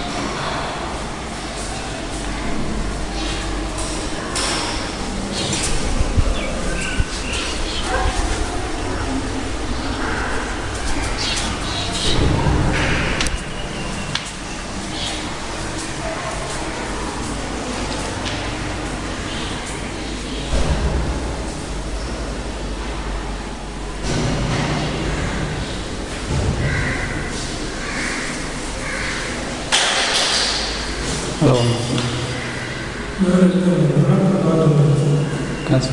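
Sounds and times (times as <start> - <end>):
steady rushing noise: 0.0 - 35.6.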